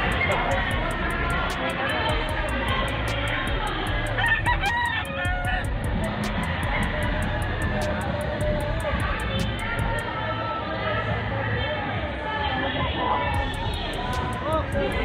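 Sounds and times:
background music: 0:00.0 - 0:15.0
hall chatter: 0:00.0 - 0:15.0
rooster crowing: 0:04.1 - 0:05.7.

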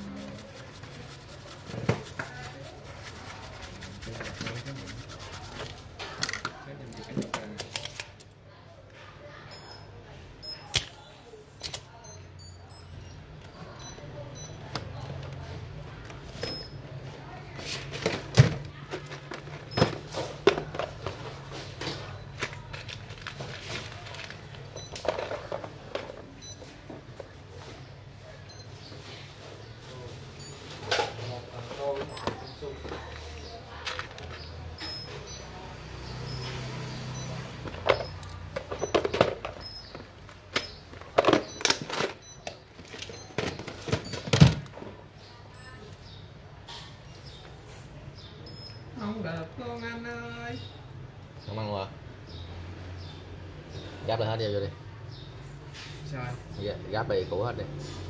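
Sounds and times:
faint background voices: 0:00.0 - 0:49.8.

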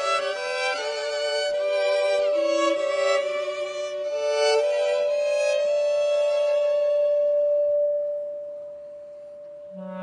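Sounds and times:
long high instrumental note: 0:00.0 - 0:10.0.

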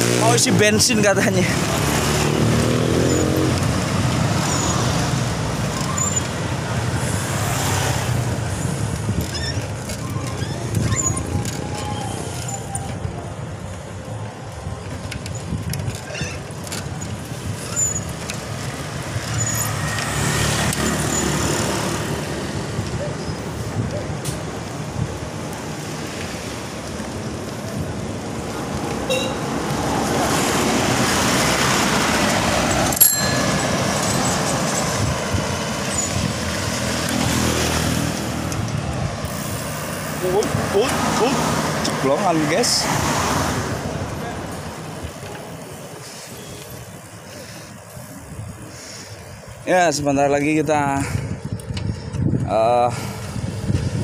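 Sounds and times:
motor vehicles passing: 0:00.0 - 0:54.0.

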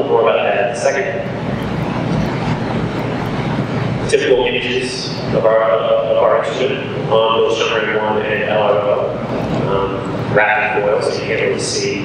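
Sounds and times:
steady rushing background noise: 0:00.0 - 0:12.0.

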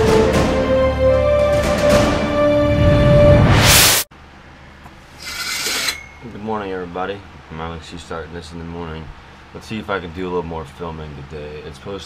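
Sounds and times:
brief rasping rub: 0:05.2 - 0:06.2.

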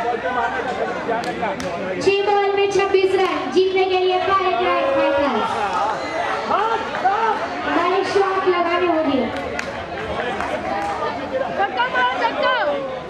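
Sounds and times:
men talking and calling: 0:00.0 - 0:13.0.

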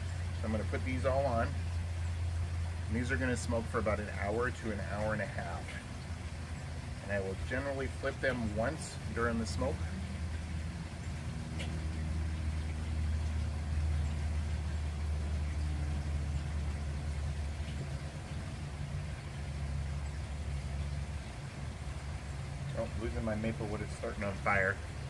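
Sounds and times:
low mechanical hum: 0:00.0 - 0:25.0
faint ticks: 0:11.0 - 0:12.5.

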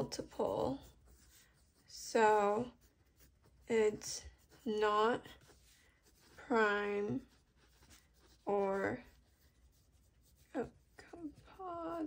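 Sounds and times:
pencil scratching on paper: 0:00.0 - 0:12.0.

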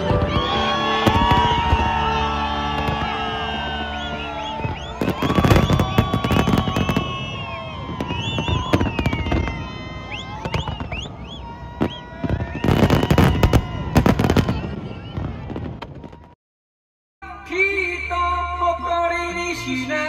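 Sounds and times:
firework whistles gliding: 0:00.0 - 0:16.3
crackling firework bursts: 0:00.0 - 0:16.4.

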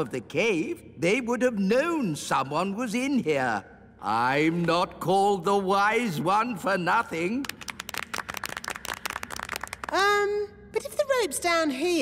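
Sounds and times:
small group clapping: 0:07.2 - 0:10.2.

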